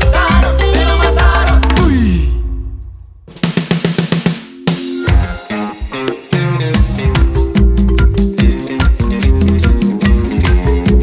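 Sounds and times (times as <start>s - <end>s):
drum kit fill: 0.0s - 11.0s
band playing: 3.5s - 11.0s.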